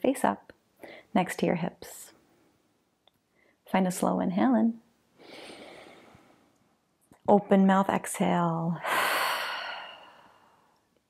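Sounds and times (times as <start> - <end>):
person exhaling: 8.8 - 10.8.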